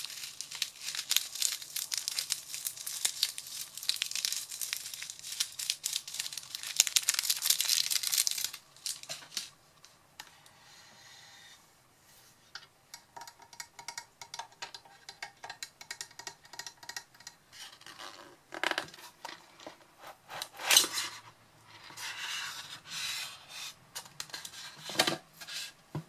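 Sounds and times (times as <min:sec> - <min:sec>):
rubbing and scraping of packaging: 0:00.0 - 0:09.5, 0:17.5 - 0:25.8.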